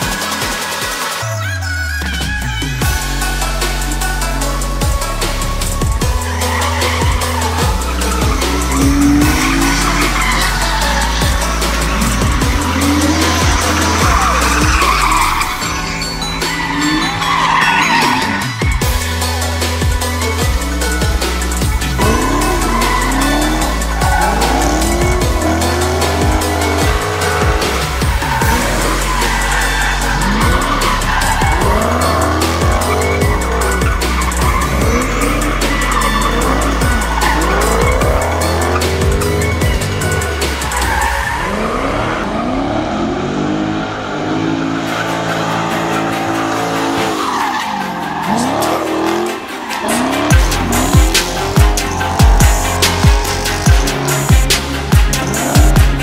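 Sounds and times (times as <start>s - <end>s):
car engine revving: 0.0s - 56.0s
electronic background music: 0.0s - 56.0s
tyre squeal: 5.6s - 42.6s.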